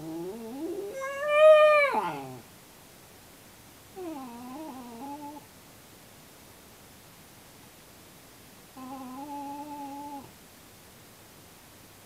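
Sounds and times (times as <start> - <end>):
dog howling: 0.0 - 2.4.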